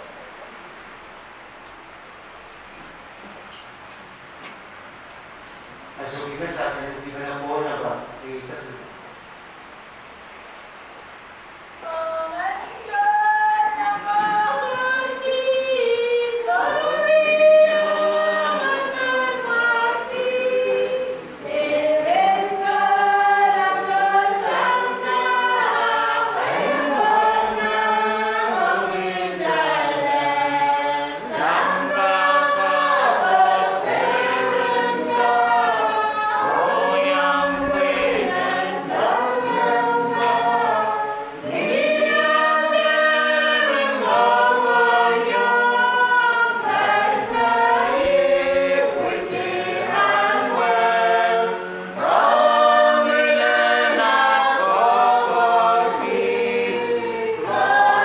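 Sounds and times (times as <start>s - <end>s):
congregation singing a hymn: 11.8s - 58.0s.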